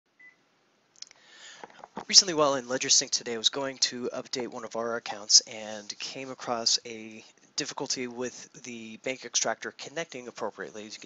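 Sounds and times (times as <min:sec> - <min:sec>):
faint hiss with small clicks: 0:00.2 - 0:09.1.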